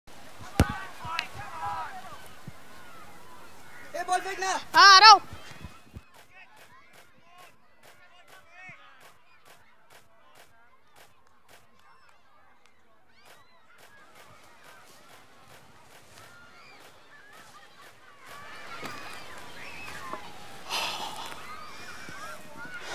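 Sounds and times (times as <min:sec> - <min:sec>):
birds chirping: 0:00.4 - 0:22.9.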